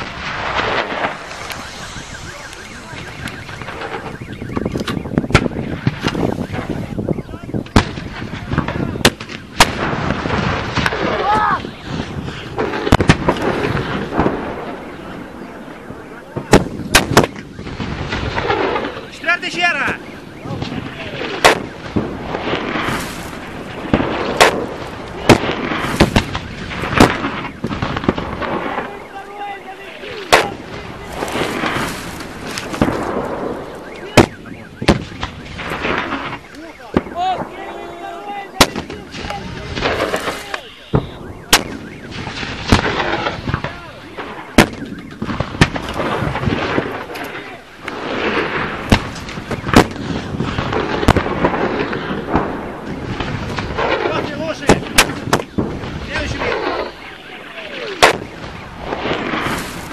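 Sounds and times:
gunshots and blasts: 0:00.0 - 0:59.9
voices: 0:00.9 - 0:09.6, 0:10.8 - 0:49.8, 0:52.8 - 0:59.2.

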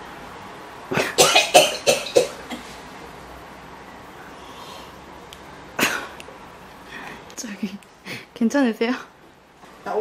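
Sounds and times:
elderly woman coughing: 0:00.9 - 0:02.7.

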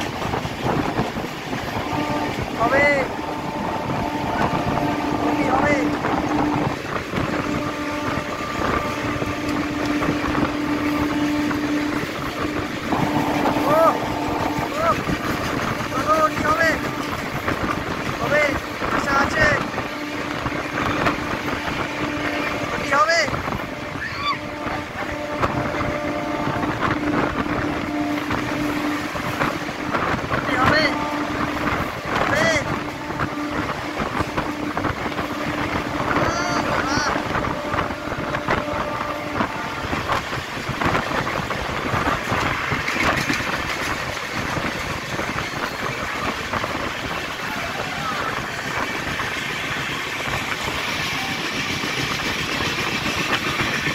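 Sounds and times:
rushing wind: 0:00.0 - 0:53.9
train wheels on rails: 0:00.0 - 0:53.9
passengers calling out: 0:47.2 - 0:49.2.

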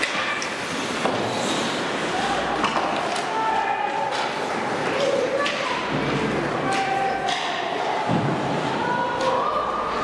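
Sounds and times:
echoing arena noise: 0:00.0 - 0:10.0
hockey sticks clacking puck: 0:00.0 - 0:10.0.

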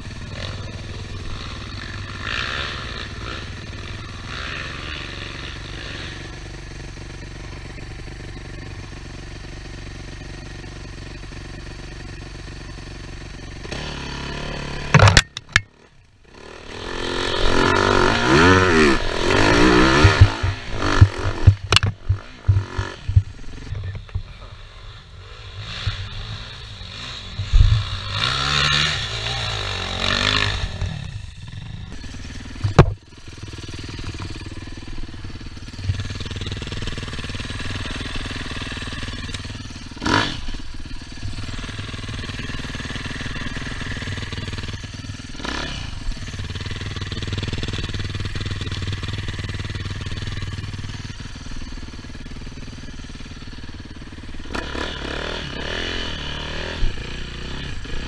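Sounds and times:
dirt bike engine revving: 0:00.0 - 0:58.0
sharp knocks: 0:19.9 - 0:23.3, 0:32.6 - 0:33.0.

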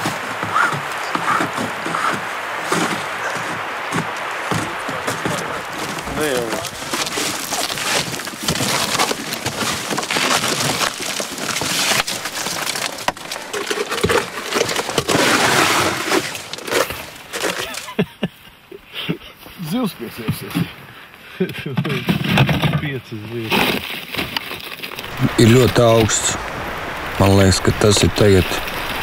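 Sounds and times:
ice crunching and cracking: 0:00.0 - 0:18.0, 0:23.3 - 0:29.0.

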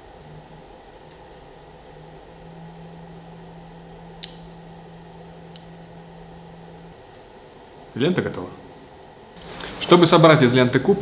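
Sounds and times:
low steady hum: 0:00.0 - 0:11.0
magnetic balls snapping together: 0:04.1 - 0:05.8.

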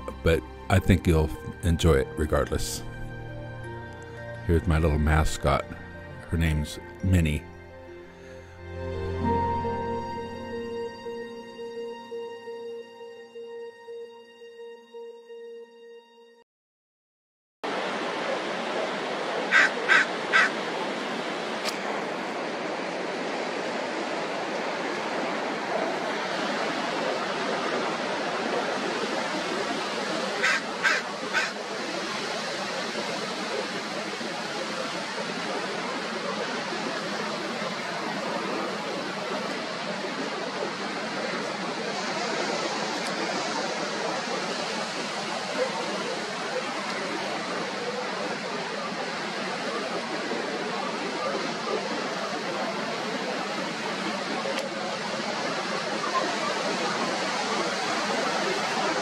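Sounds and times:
surf washing: 0:17.6 - 0:59.0
sea lions barking: 0:19.4 - 0:20.6, 0:30.3 - 0:31.7.

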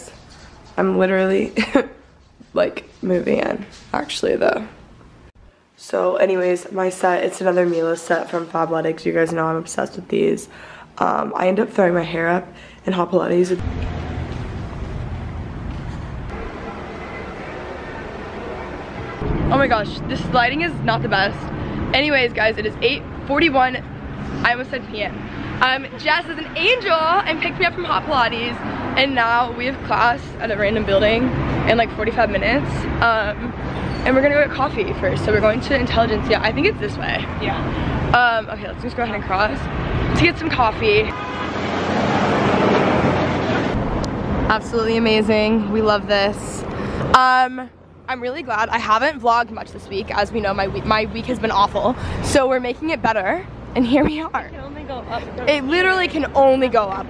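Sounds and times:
street traffic rush: 0:07.0 - 0:11.0, 0:11.8 - 0:57.0.

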